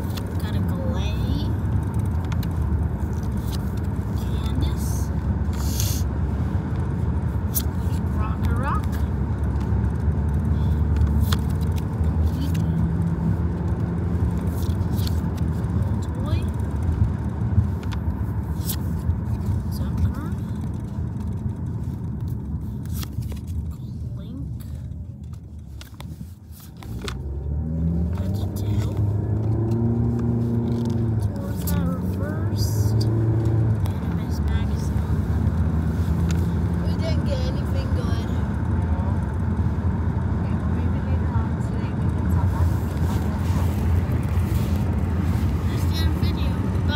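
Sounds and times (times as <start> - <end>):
trading cards clicking and rustling: 0.0 - 4.6, 6.7 - 36.8
road rumble inside car: 0.0 - 46.9
voices: 4.1 - 6.0, 7.5 - 9.1, 12.1 - 13.0, 30.7 - 33.2, 33.8 - 35.2, 36.7 - 38.6, 40.3 - 44.4, 45.5 - 46.9.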